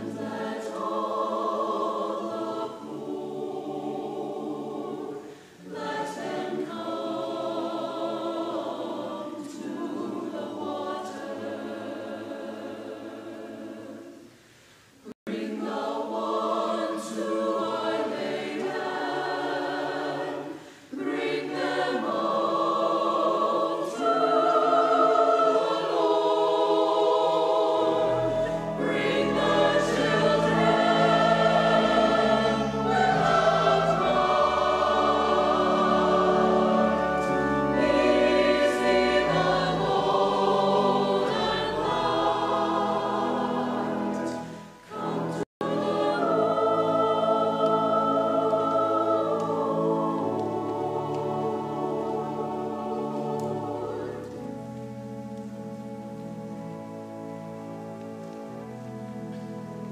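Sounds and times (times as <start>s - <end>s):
mixed choir singing: 0.0s - 14.3s, 15.0s - 54.9s.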